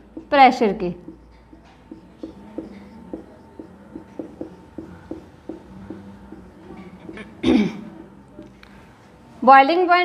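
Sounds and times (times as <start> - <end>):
marker writing on whiteboard: 0.0 - 7.4.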